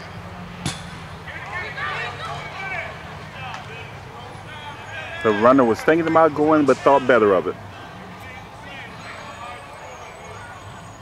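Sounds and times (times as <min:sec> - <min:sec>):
distant voices calling out: 0:00.0 - 0:11.0.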